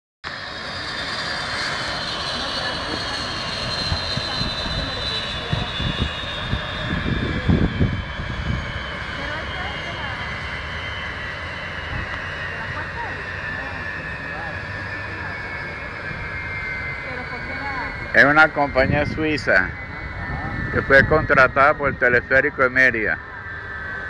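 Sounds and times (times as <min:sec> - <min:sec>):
helicopter engines whining down: 0:00.2 - 0:24.0
helicopter rotors turning: 0:00.3 - 0:24.0.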